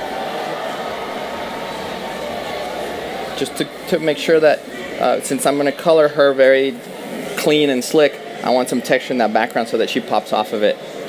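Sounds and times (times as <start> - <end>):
continuous hiss: 0.0 - 11.0.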